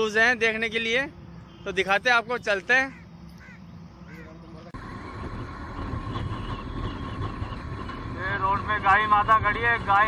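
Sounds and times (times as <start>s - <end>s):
bird calls: 2.8s - 5.0s
motorcycle wind and road noise: 4.8s - 10.0s.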